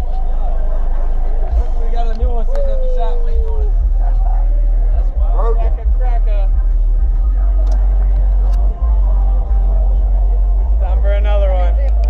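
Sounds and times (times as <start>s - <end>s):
crowd chatter: 0.0s - 12.0s
deep subwoofer bass note: 0.0s - 12.0s.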